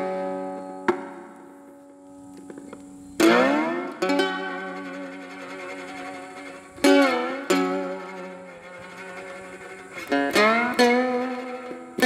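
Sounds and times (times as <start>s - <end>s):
guitar note plucked: 0.0s - 12.0s
guitar strike sliding upward: 0.0s - 12.0s
slide guitar chord ringing: 0.0s - 12.0s.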